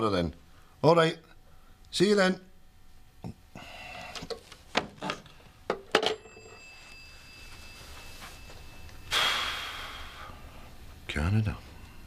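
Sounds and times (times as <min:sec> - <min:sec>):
faint phone ringing: 0:05.2 - 0:09.2
hissing burst with ringing tone: 0:06.3 - 0:10.9.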